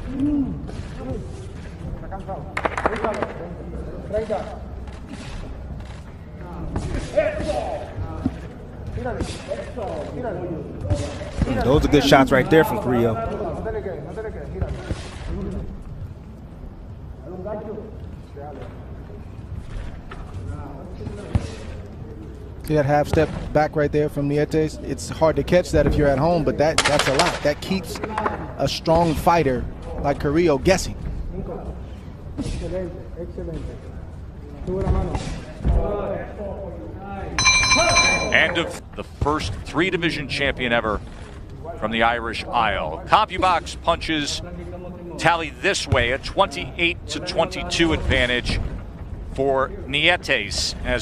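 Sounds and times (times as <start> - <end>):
footwork on ring canvas: 0.0 - 12.0, 13.2 - 16.2, 32.2 - 36.2, 37.4 - 39.6
voices: 36.6 - 40.9
boxing ring bell ringing: 37.4 - 38.7.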